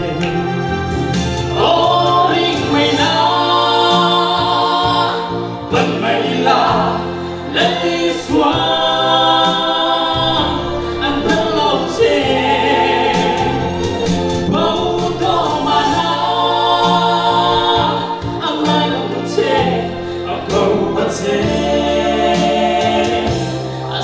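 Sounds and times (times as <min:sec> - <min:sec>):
instrumental accompaniment with bass: 0:00.0 - 0:24.0
man singing into microphone: 0:05.8 - 0:13.6, 0:14.4 - 0:21.6.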